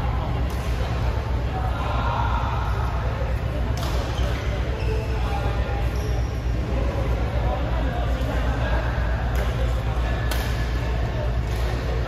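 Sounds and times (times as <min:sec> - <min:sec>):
faint voices: 0:00.0 - 0:12.0
racket striking shuttlecock: 0:10.2 - 0:10.8.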